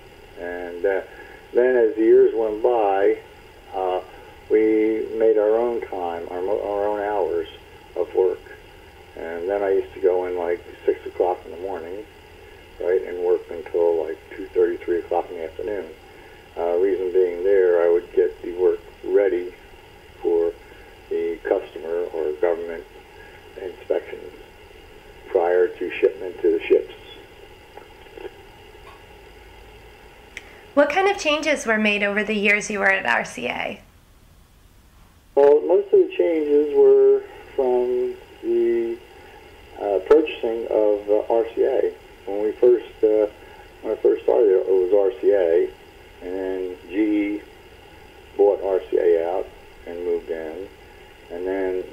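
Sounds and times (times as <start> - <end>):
person talking: 30.8 - 33.8.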